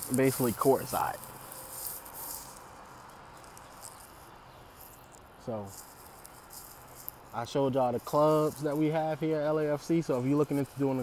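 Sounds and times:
high hiss: 0.0 - 4.2.

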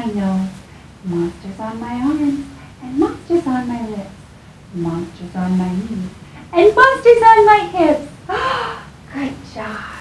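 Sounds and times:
woman's breathy sounds: 8.3 - 9.0.

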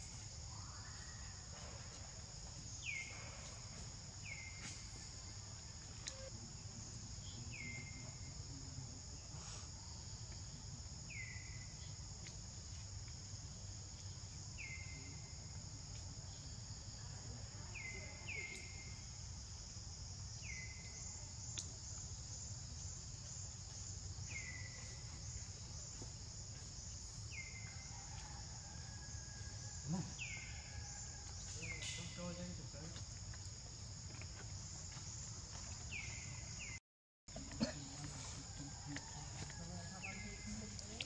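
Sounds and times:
insects buzzing: 0.0 - 41.0.

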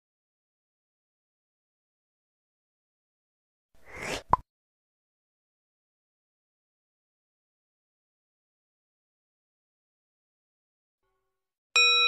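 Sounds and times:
bell ding: 11.8 - 12.0.

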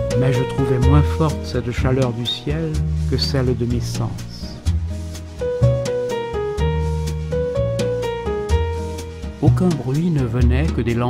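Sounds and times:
instrumental music: 0.0 - 11.0.

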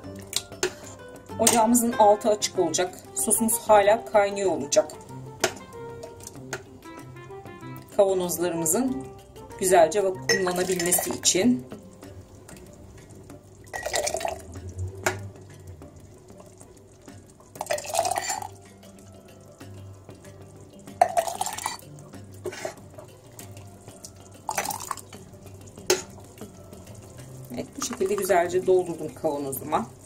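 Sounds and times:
metal ladle clinking: 10.2 - 11.4, 17.6 - 18.6, 20.9 - 26.6
sauce pouring into jar: 13.4 - 19.6, 20.2 - 28.2.

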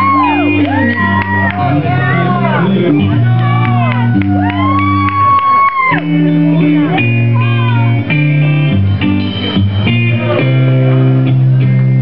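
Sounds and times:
bass line: 0.0 - 12.0
electric guitars playing blues: 0.0 - 12.0.

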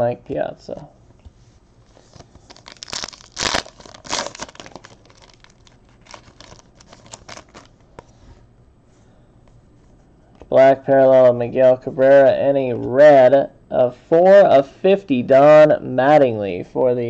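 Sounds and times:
wrapper tearing and crinkling: 2.0 - 7.8.

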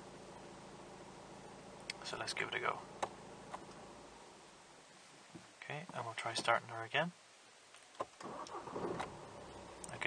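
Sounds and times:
diesel engine starting and idling: 8.2 - 10.0.

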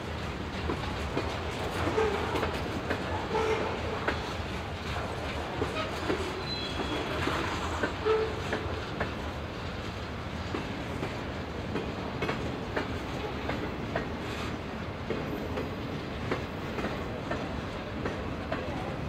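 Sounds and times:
train wheels rumbling: 0.0 - 19.0
wheels clacking over rail joints: 0.0 - 19.0
wheel squeals: 5.8 - 7.3.

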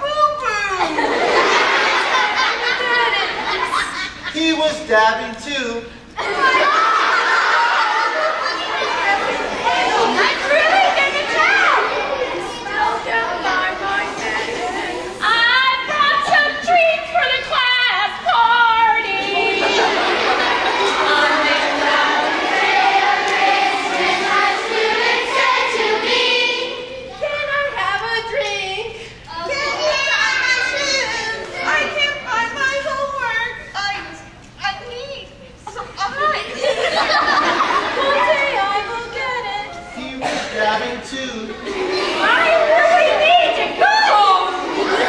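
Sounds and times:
children and adults talking: 0.0 - 45.0.

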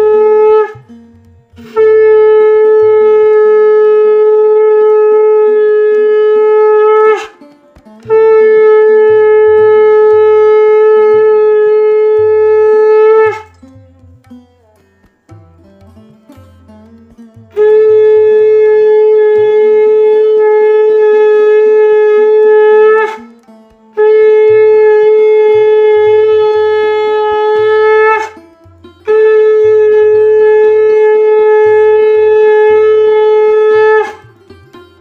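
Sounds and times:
conch shell blown: 0.0 - 14.8, 15.7 - 35.0.

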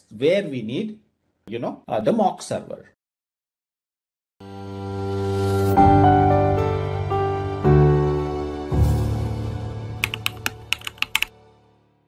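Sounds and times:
background music: 4.4 - 12.0
keyboard key clicks: 10.0 - 11.3.

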